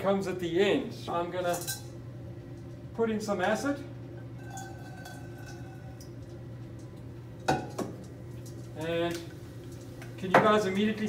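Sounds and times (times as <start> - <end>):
fume hood fan hum: 0.0 - 11.0.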